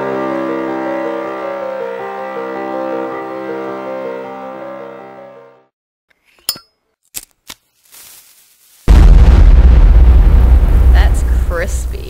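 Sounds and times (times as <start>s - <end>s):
bass-heavy rumble: 8.9s - 12.0s.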